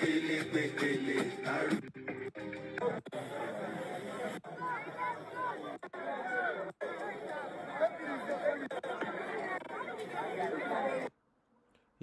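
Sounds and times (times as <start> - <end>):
crowd talking: 0.0 - 11.2.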